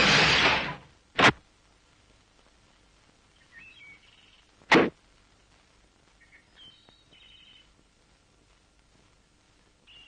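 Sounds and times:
faint bird chirps: 3.3s - 4.6s, 6.1s - 7.8s.

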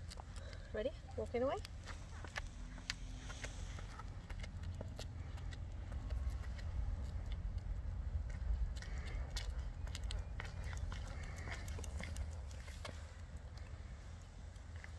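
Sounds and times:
footsteps on asphalt: 0.0s - 14.9s
low rumble: 0.0s - 14.9s.

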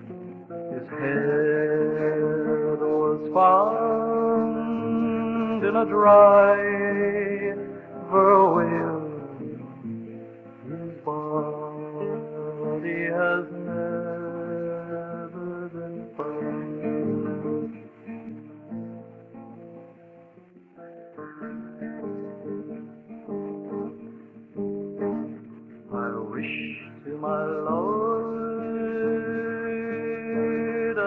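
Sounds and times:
acoustic guitar playing: 0.0s - 31.0s.

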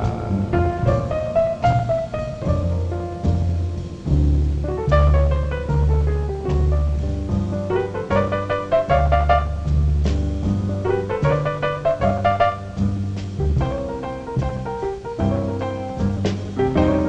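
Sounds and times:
jazz piano solo: 0.0s - 17.0s
walking string bass: 0.0s - 17.0s.

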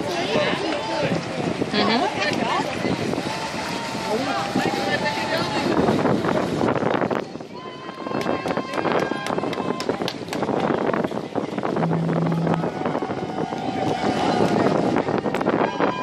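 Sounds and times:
wind on microphone: 0.0s - 16.0s
low steady tone: 11.7s - 14.0s.

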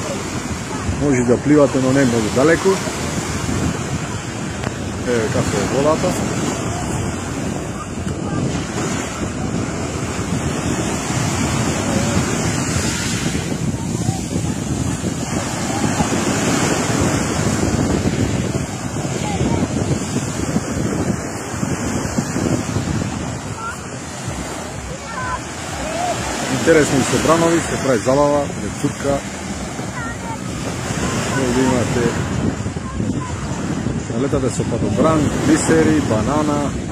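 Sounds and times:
waves washing on pebble beach: 0.0s - 36.9s
wind noise on microphone: 0.0s - 36.9s.

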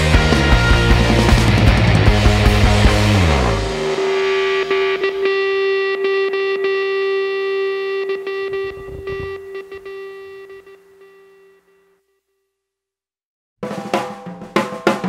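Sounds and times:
electric guitar chord ringing: 0.0s - 11.8s.

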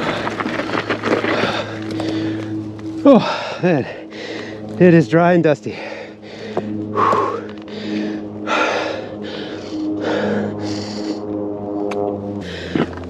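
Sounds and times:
person breathing hard: 0.0s - 4.8s, 5.7s - 11.8s, 12.4s - 13.0s
background music with sustained notes: 0.0s - 13.0s.

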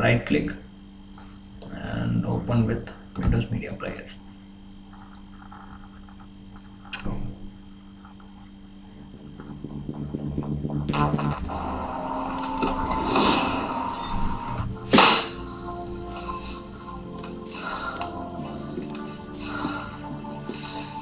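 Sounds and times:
low steady hum: 0.0s - 21.0s
film soundtrack music: 7.9s - 21.0s.

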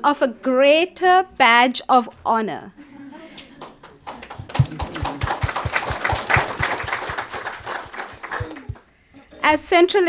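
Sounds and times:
audience applauding: 3.5s - 8.9s.

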